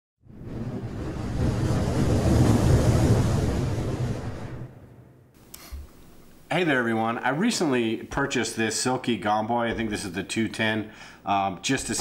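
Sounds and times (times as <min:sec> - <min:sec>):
deep rumble: 0:00.2 - 0:05.0
loud noisy whoosh: 0:00.3 - 0:05.3.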